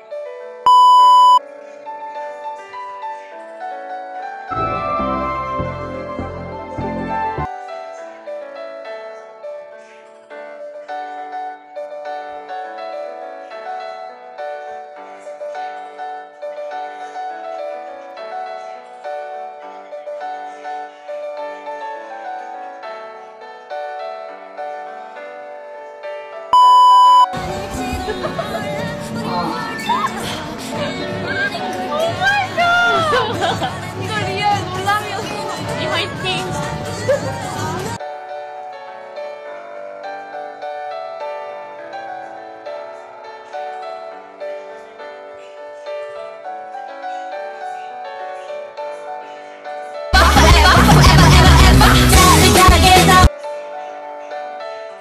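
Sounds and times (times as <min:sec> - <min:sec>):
electronic censor beep: 0:00.7 - 0:01.4, 0:26.6 - 0:27.3
music and voices: 0:01.0 - 0:26.2, 0:27.3 - 0:55.0
piano music: 0:02.2 - 0:30.0.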